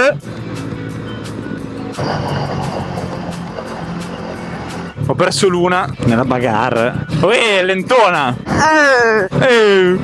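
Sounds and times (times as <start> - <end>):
background music: 0.0 - 10.0
motorcycle engine running: 0.1 - 7.2.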